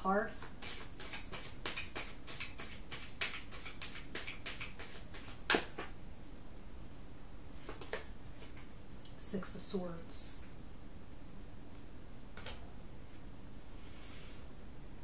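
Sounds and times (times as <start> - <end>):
cards being shuffled: 0.4 - 5.9, 7.6 - 8.7, 12.4 - 13.2
card snap: 12.4 - 12.6.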